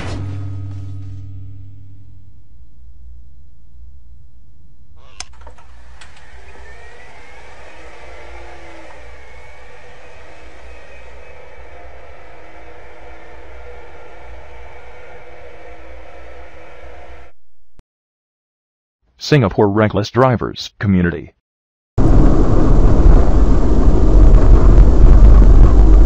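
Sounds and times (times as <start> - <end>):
electric wheelchair motor whirring: 5.0 - 17.3
sharp clicks: 5.1 - 6.6.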